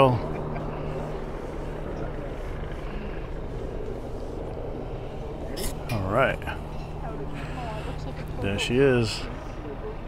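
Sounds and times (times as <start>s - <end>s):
distant town and traffic noise: 0.0s - 10.0s
low engine-like hum: 0.0s - 10.0s.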